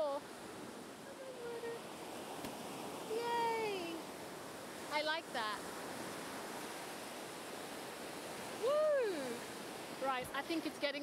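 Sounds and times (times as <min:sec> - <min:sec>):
waves breaking on beach: 0:00.0 - 0:11.0.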